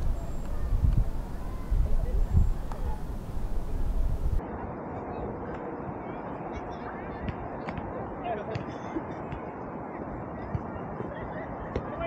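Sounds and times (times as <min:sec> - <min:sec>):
distant voices calling: 0:00.0 - 0:04.4
wind on microphone: 0:00.0 - 0:07.6.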